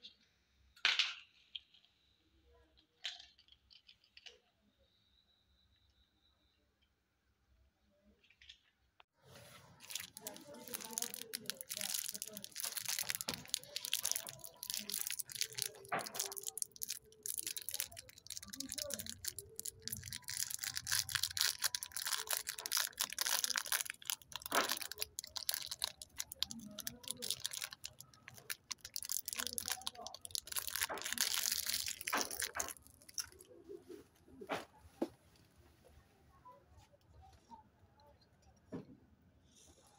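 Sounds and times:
plastic wrapper crinkling and tearing: 9.7s - 33.6s.

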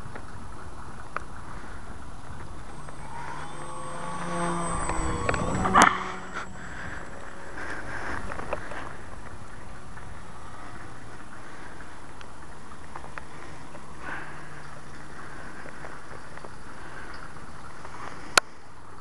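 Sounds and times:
model plane motor buzzing: 1.8s - 10.0s.

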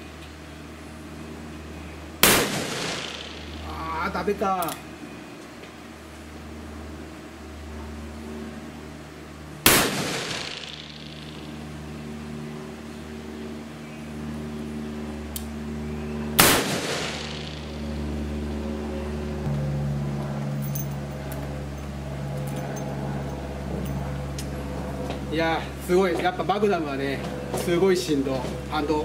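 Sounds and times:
revolver gunshots: 2.2s - 3.8s, 9.6s - 11.7s, 16.4s - 18.6s.

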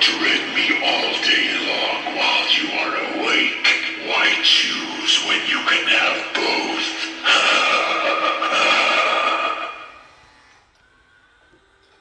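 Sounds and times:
drawn-out voice-like sound: 0.0s - 10.6s.

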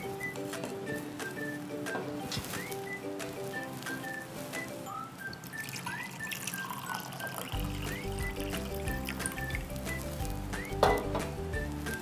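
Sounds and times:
water poured between glasses: 5.3s - 9.4s
background music with bass: 7.6s - 12.0s.

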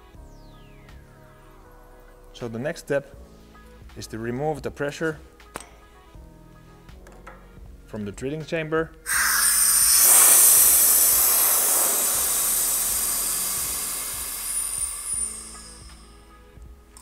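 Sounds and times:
compressed air hissing: 9.1s - 16.4s.

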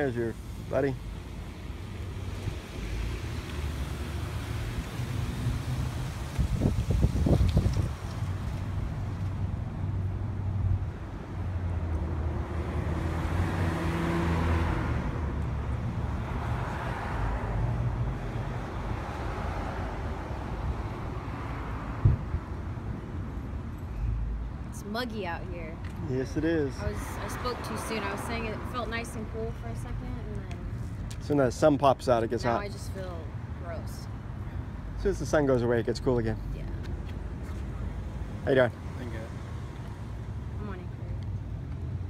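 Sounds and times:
car passing: 0.0s - 42.0s.

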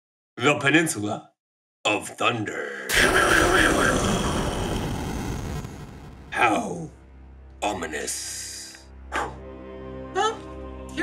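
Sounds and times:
thunder rumbling: 2.9s - 6.9s.

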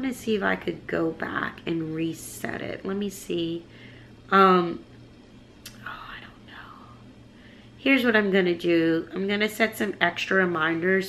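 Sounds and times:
steady low hum: 0.0s - 11.0s
woman whispering: 5.7s - 7.0s.

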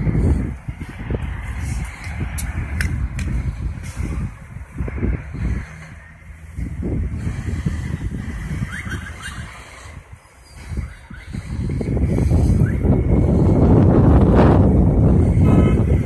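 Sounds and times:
street traffic noise: 0.0s - 16.0s
wind buffeting microphone: 0.0s - 16.0s.

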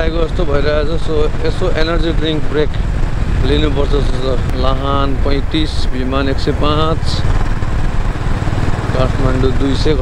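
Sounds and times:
motorcycle engine running: 0.0s - 10.0s
road and wind noise: 0.0s - 10.0s.

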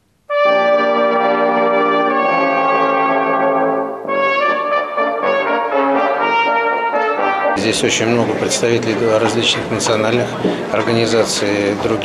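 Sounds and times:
brass ensemble playing: 0.3s - 9.7s.

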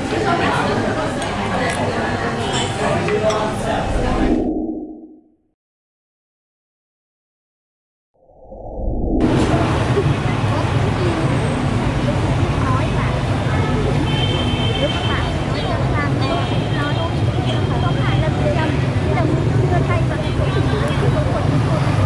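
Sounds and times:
people's voices: 0.0s - 4.6s, 9.2s - 22.0s
motorbike and car traffic rumble: 9.2s - 22.0s.

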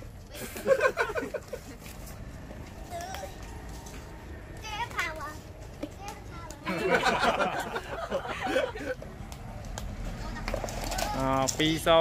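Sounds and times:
children talking and shouting: 2.4s - 11.6s
high-pitched child's voice: 2.9s - 3.4s, 4.6s - 6.7s.

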